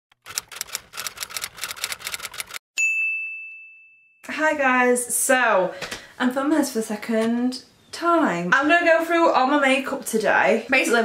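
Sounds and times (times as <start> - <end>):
typewriter key clicks: 0.2 - 2.6.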